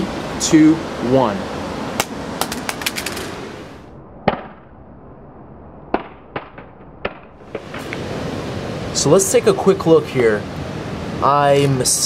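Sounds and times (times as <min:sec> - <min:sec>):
phone parts clicking on concrete: 0:02.4 - 0:03.3
background hiss: 0:07.4 - 0:12.0.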